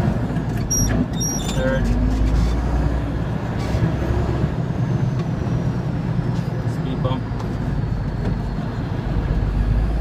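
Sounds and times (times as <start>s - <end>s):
road noise: 0.0s - 10.0s
truck engine rumbling: 0.0s - 10.0s.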